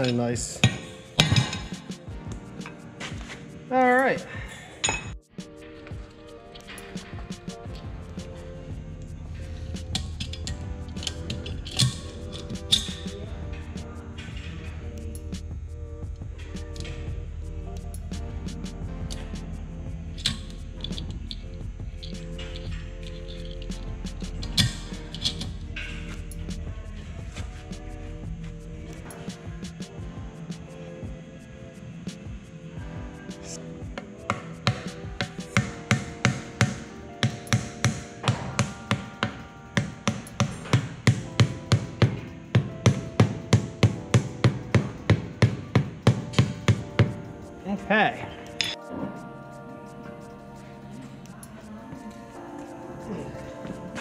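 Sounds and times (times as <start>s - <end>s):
background music: 0.0s - 54.0s
hammer tapping on metal: 34.3s - 47.2s.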